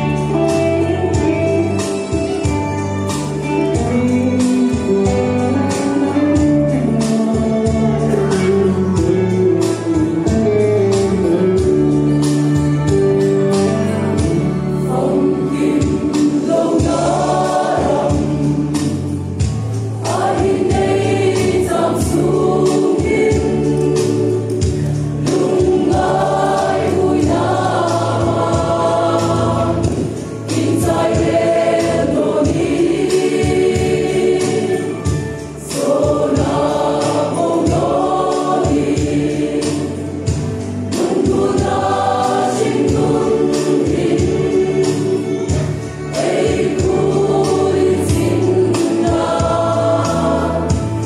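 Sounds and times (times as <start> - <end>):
choir singing a hymn: 0.0 - 12.6, 13.2 - 51.0
steady percussive beat: 0.0 - 51.0.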